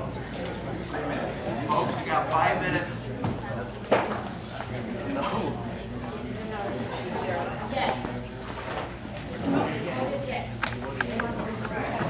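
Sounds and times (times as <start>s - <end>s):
indistinct talk of people: 0.0s - 12.0s.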